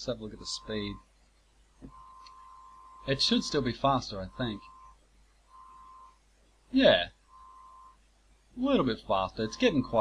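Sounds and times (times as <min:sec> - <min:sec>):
faint high-pitched tone: 0:00.0 - 0:01.1, 0:01.8 - 0:08.0, 0:08.6 - 0:10.0.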